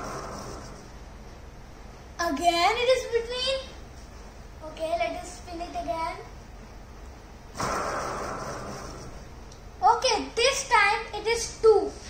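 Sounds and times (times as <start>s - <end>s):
fidget spinner whirring: 0.0s - 1.1s, 7.6s - 10.7s.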